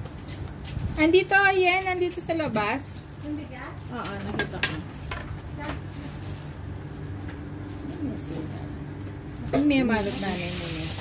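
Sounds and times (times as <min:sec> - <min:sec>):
steady low hum: 0:00.0 - 0:10.8.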